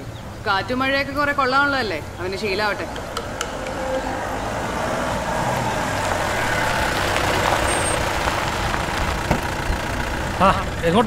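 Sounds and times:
jeep engine running: 2.0s - 11.0s.

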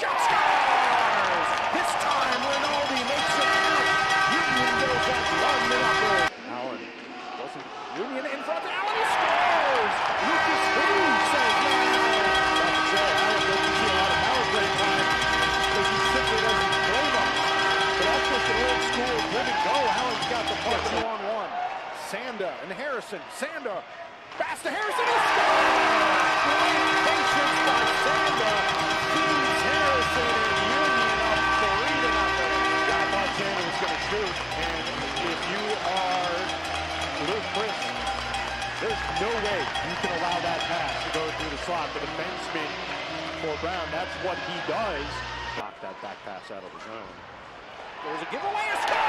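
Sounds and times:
crowd cheering and shouting: 0.0s - 6.3s, 6.9s - 49.0s
goal horn chord: 0.8s - 6.4s, 10.1s - 21.2s, 25.0s - 45.3s.

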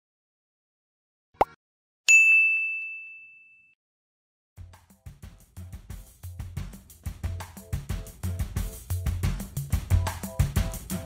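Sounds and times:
notification bell ding: 2.1s - 3.8s.

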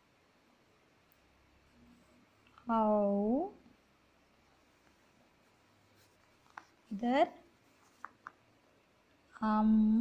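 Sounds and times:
notebook page turning: 6.0s - 6.8s, 7.7s - 8.4s.

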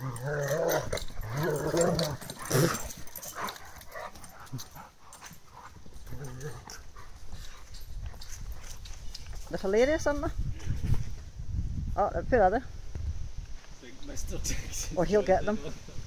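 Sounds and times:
dogs vocalising while play-fighting: 0.0s - 8.9s
dogs scuffling: 0.0s - 11.2s.

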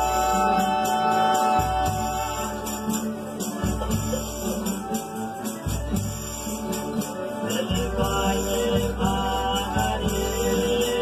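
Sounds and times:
men singing: 0.0s - 3.2s, 7.0s - 11.0s
guitar-type string instrument: 0.0s - 11.0s.

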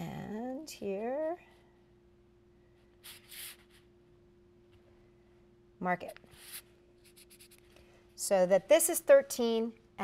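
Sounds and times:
marker scratching on paper: 3.0s - 3.9s, 6.3s - 7.6s.

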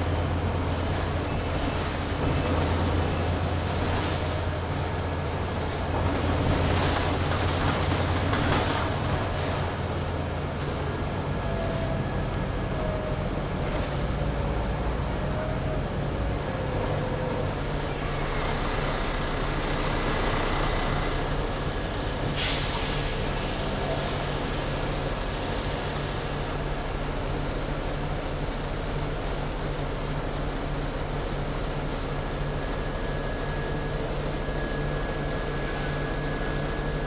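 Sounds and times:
bus engine and road noise hum: 0.0s - 37.0s
air brake hiss: 22.3s - 23.3s.

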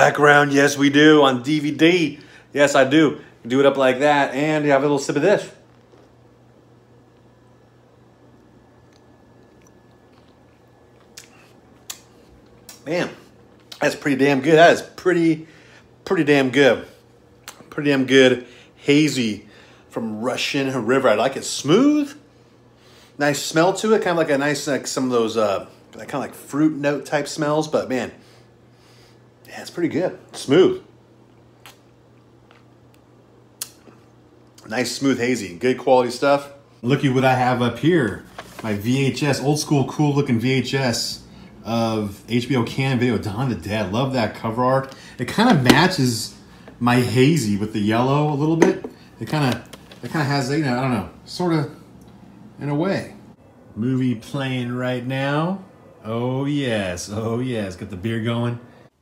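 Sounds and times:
low steady room hum: 0.0s - 59.0s.

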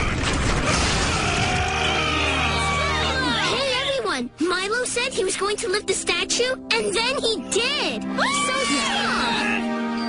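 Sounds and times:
creaking and grinding: 0.0s - 2.3s.

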